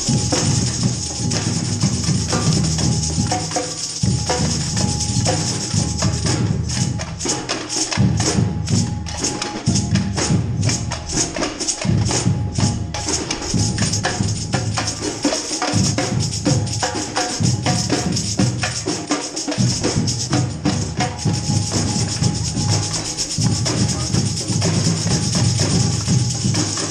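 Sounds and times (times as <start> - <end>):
deep bass line: 0.0 - 3.4, 11.9 - 15.0, 19.9 - 26.9
drums: 0.0 - 26.9
jingling tambourines: 0.0 - 26.9.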